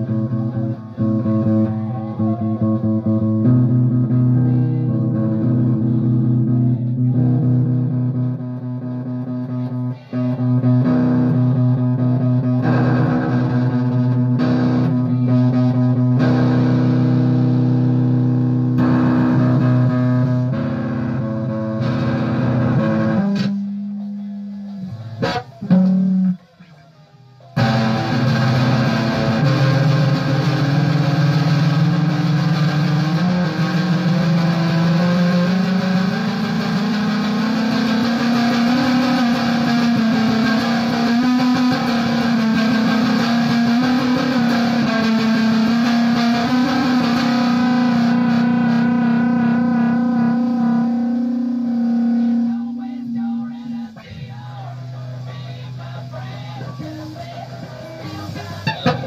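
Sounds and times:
guitar jam: 0.0s - 59.0s.

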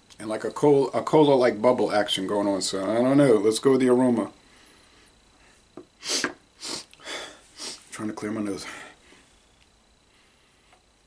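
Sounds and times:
man breathing sharply through nose: 4.4s - 7.9s.

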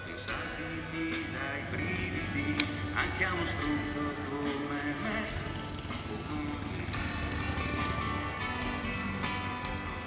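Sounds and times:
distant live band music: 0.4s - 10.0s.

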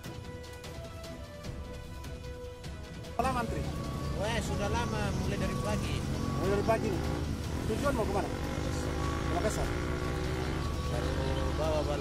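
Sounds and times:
man talking: 3.2s - 7.0s, 10.9s - 12.0s
truck engine running: 3.6s - 12.0s.

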